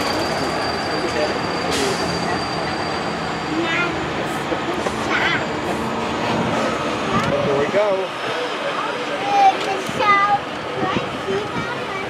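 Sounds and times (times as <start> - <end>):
passengers' voices: 0.0 - 12.0
tram rolling noise: 0.0 - 12.0.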